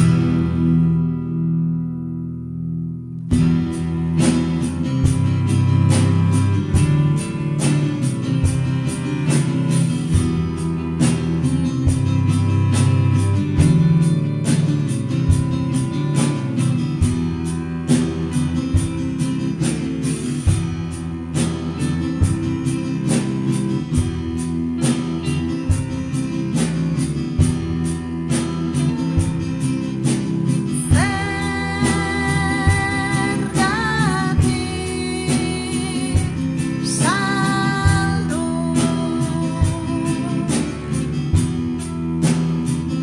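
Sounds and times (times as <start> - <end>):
electric guitar: 0.0 - 43.0
strummed acoustic guitar: 0.0 - 43.0
drum beat: 3.3 - 43.0
woman singing: 28.3 - 41.8.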